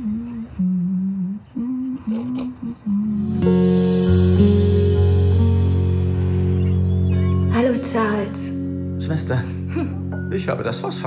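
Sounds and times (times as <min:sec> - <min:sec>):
person humming a tune: 0:00.0 - 0:04.7.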